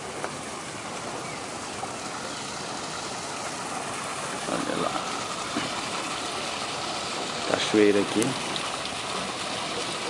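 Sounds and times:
small waterfall pouring over rocks: 0.0 - 10.0.

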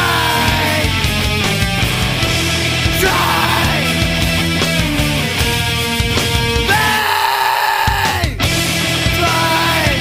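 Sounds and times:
heavy rock band music: 0.0 - 10.0.

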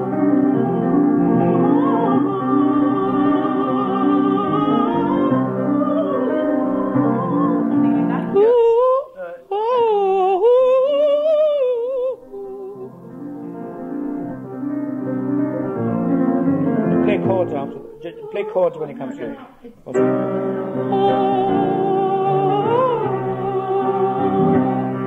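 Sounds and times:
piano chords: 0.0 - 9.0, 11.4 - 25.0
operatic soprano singing: 0.0 - 13.3, 17.0 - 25.0.

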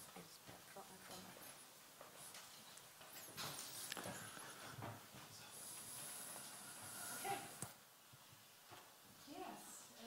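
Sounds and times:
faint high hiss: 0.0 - 10.0
people shuffling and rustling: 0.0 - 10.0.

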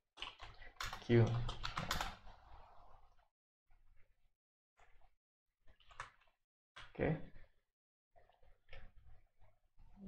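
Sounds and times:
computer keyboard typing: 0.2 - 2.2.

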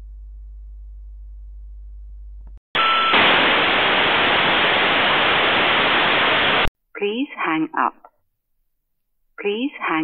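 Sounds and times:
brief steady tone: 2.8 - 3.6
telephone line static hiss: 2.8 - 6.7.

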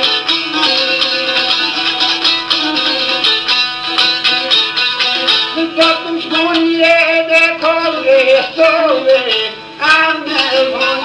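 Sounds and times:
plucked long-necked lute: 0.0 - 11.0
man singing folk song: 4.5 - 11.0.

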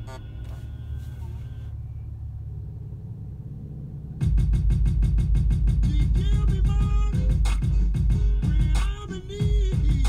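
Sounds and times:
car cabin rumble: 0.0 - 10.0
music: 4.2 - 10.0.

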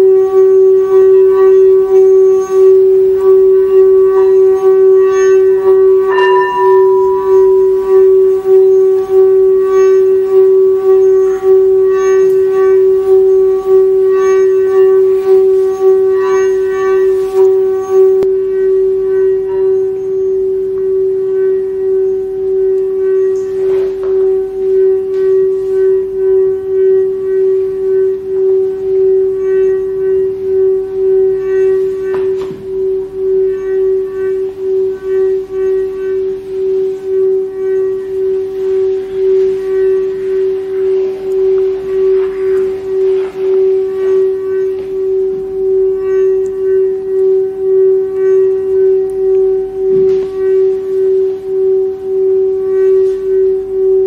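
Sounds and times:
pulsing musical drone: 0.0 - 54.0.

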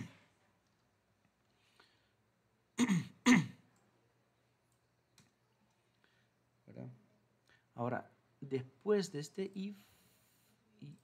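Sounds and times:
man coughing: 2.8 - 3.6.

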